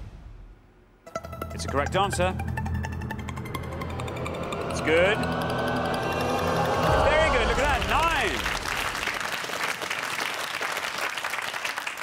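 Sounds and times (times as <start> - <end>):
game show electronic music: 1.0 - 8.8.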